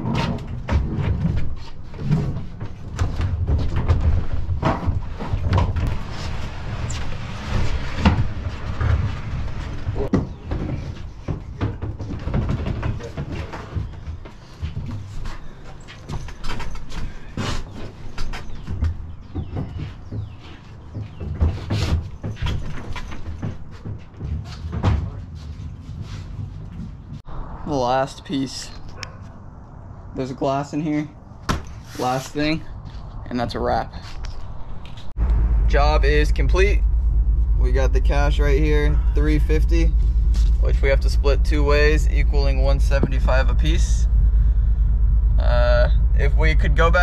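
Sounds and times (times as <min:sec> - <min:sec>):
low rumble: 0:25.6 - 0:31.4, 0:32.3 - 0:47.0.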